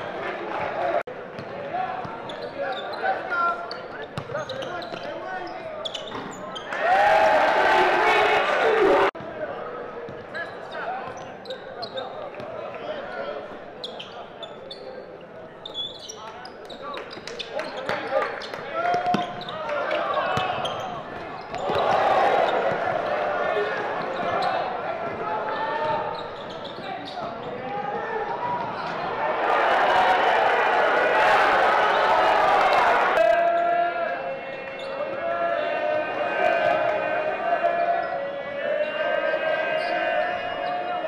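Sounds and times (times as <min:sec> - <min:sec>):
crowd chatter: 0:00.0 - 0:41.0
sneakers squeaking: 0:01.4 - 0:06.8, 0:10.1 - 0:12.5, 0:13.8 - 0:29.3.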